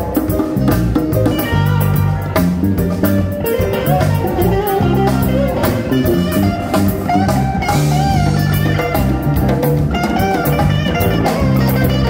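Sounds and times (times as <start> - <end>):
djembe: 0.0 - 12.0
drum kit: 0.0 - 12.0
electric bass line: 0.0 - 12.0
electric guitar: 0.0 - 12.0.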